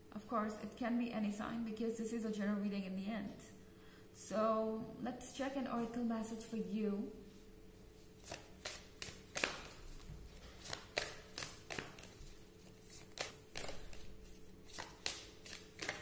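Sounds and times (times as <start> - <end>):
cards being shuffled: 8.2 - 16.0.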